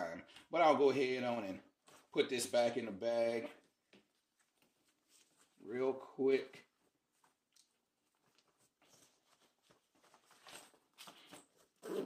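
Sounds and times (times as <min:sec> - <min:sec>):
fabric rustling: 0:04.1 - 0:05.7, 0:06.7 - 0:12.0.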